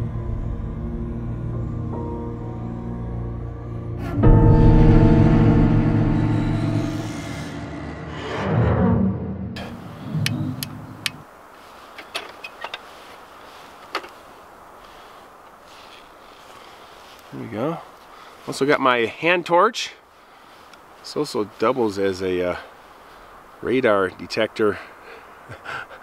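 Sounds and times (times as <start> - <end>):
deep sustained impact hit: 3.6 - 10.9
lantern clicks: 10.2 - 11.2.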